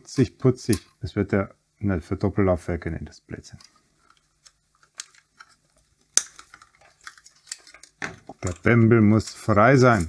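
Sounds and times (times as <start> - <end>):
ribbon cables clicking and rustling: 3.6 - 10.0.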